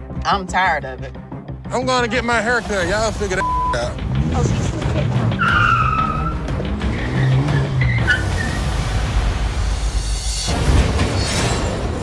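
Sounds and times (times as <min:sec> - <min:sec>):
tire squeal: 0:05.4 - 0:08.8.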